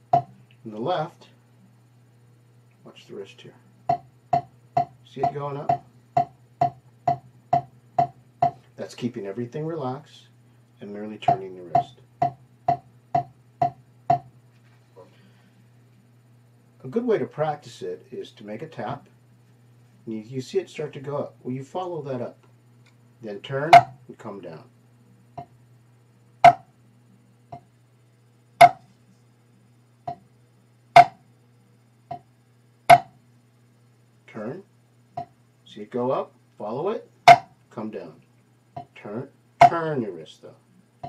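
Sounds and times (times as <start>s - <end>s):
drumsticks tapping practice pad: 0.0s - 0.4s, 3.9s - 8.6s, 11.2s - 14.3s, 23.7s - 24.0s, 26.4s - 26.7s, 28.6s - 28.9s, 31.0s - 31.2s, 32.9s - 33.2s, 37.3s - 37.5s, 39.6s - 39.8s.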